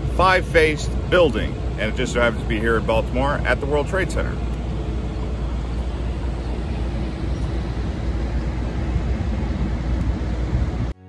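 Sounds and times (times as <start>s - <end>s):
traffic rumbling: 0.0s - 11.0s.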